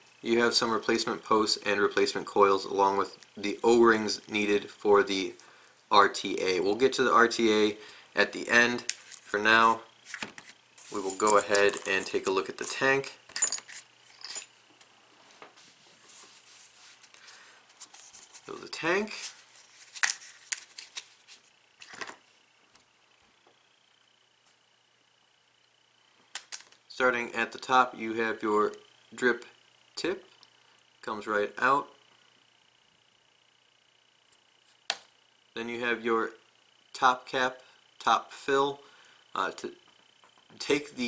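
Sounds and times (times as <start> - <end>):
faint handling rustle: 8.8 - 12.8, 13.4 - 22.4.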